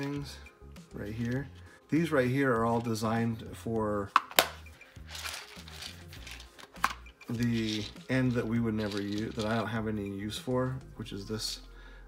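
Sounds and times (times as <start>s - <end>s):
small parts rattling in box: 5.1s - 8.2s, 8.8s - 9.7s.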